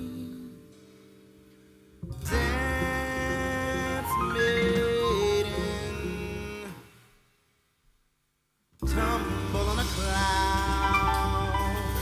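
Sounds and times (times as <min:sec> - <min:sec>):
faint electrical hum: 0:00.0 - 0:12.0
jazz band chord: 0:08.8 - 0:12.0.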